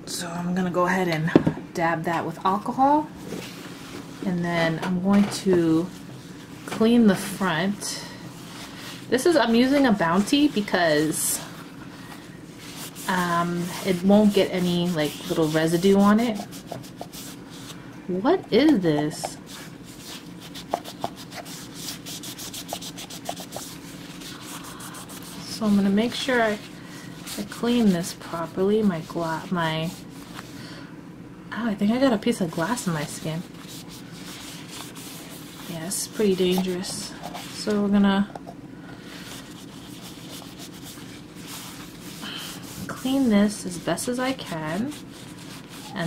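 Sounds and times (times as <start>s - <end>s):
paper towel scrubbing phone: 8.4s - 17.8s, 18.6s - 30.5s, 32.5s - 38.0s, 39.1s - 46.0s.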